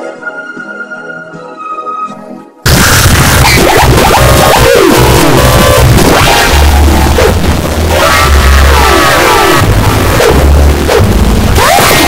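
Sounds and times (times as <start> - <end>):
dense noisy texture: 2.6 - 12.0
bass drone: 2.7 - 12.0.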